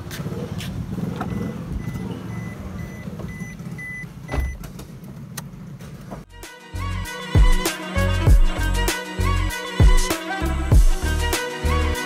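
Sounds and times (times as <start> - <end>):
high beeps: 1.3 - 4.6
car door shutting: 3.0 - 5.0.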